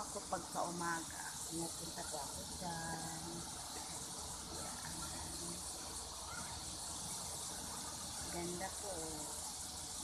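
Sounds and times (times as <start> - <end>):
high hiss: 0.0 - 10.0.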